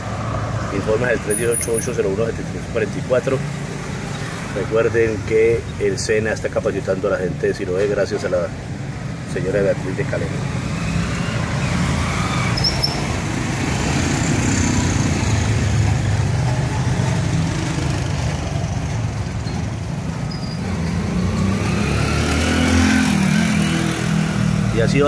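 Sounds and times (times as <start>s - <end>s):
street traffic engine rumble: 0.0s - 25.0s.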